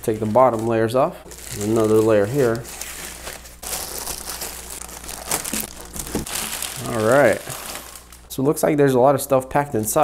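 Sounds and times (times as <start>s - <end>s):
plastic bag crinkling: 0.0s - 8.4s.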